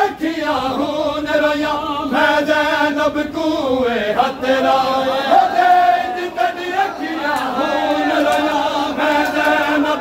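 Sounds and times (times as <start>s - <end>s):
men chanting a lament: 0.0s - 10.0s.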